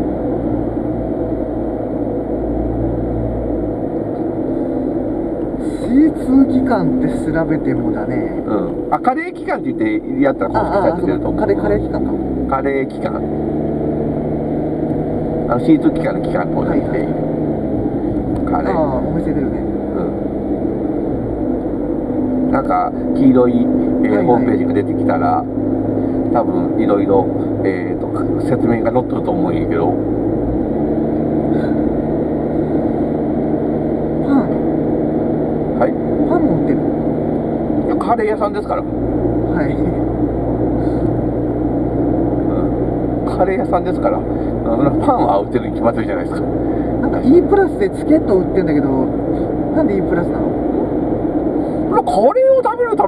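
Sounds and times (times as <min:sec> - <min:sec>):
car road and engine noise: 0:00.0 - 0:53.0
people talking: 0:05.6 - 0:13.3, 0:15.5 - 0:17.2, 0:18.4 - 0:20.2, 0:22.5 - 0:25.5, 0:26.3 - 0:30.0, 0:34.2 - 0:34.6, 0:35.8 - 0:36.8, 0:37.8 - 0:40.1, 0:42.4 - 0:50.6, 0:51.9 - 0:53.0.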